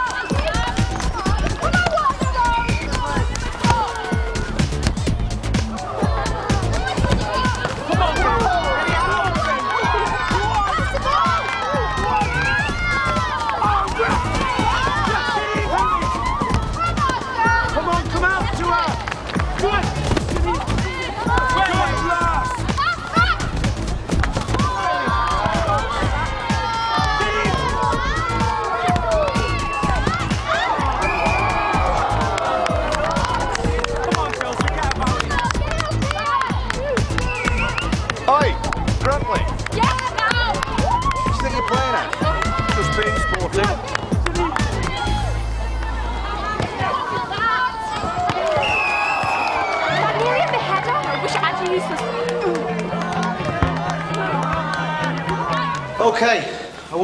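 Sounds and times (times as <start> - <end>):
girls shouting: 0.0 - 4.6, 5.6 - 19.1, 20.4 - 23.6, 24.3 - 34.1, 35.2 - 38.1, 39.7 - 56.0
background music: 0.0 - 57.0.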